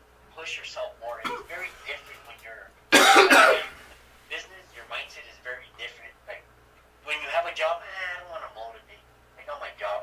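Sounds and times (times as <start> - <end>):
man clearing his throat: 2.9 - 3.8.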